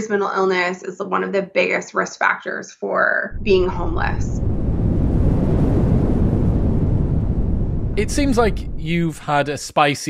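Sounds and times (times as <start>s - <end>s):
low rumble sound effect: 3.3s - 9.7s.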